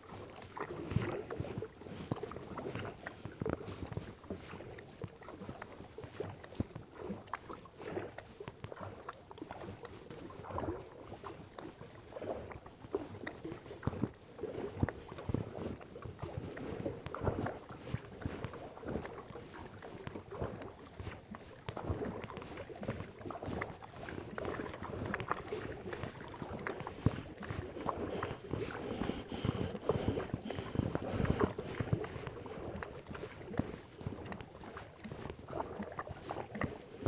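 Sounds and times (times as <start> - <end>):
kayak paddle strokes in water: 0.0 - 37.0
water dripping from paddle: 0.0 - 37.0
water moving along hull: 0.0 - 37.0.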